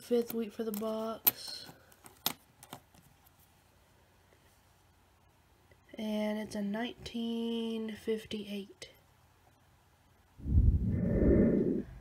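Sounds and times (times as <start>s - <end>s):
air rushing on microphone: 10.4s - 12.0s.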